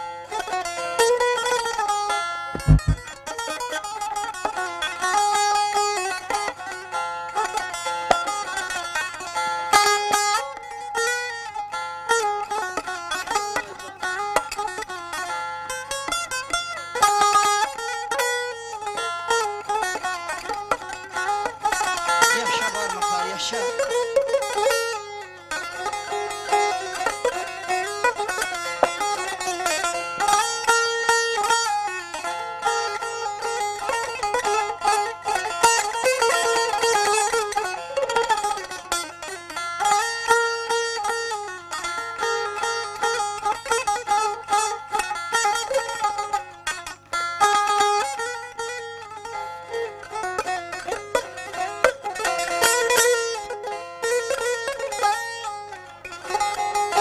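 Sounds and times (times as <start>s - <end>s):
plucked lute runs: 0.3s - 57.0s.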